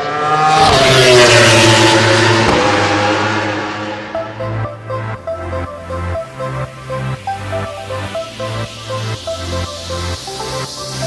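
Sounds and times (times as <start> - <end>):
vehicle engine passing by: 0.0 - 4.5.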